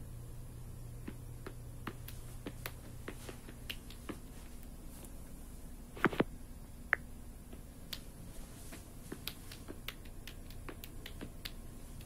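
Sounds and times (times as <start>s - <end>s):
faint low steady hum: 0.0s - 12.0s
irregular sharp clicks: 9.1s - 12.0s.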